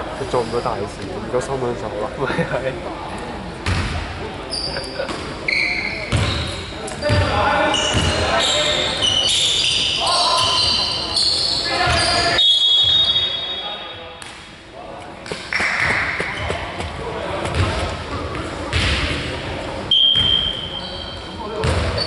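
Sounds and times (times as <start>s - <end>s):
basketball bouncing on gym floor: 6.1s - 8.2s, 15.6s - 19.1s, 21.6s - 22.0s.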